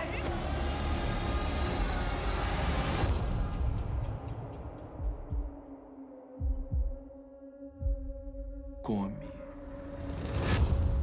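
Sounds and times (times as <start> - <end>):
low heartbeat-like thumps: 3.1 - 5.7, 6.4 - 7.2, 7.8 - 8.8.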